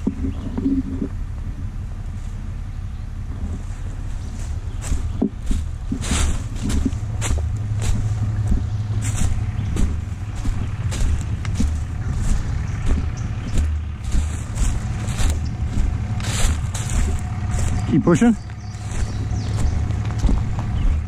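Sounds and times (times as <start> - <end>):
steady low rumble: 0.0 - 21.0
footsteps crunching through dry leaves: 3.4 - 21.0.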